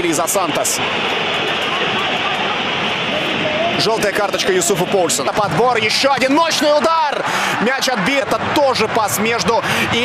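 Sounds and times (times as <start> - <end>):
rushing stadium crowd ambience: 0.0 - 10.0
faint voices: 0.4 - 5.8
commentator speaking: 3.2 - 10.0.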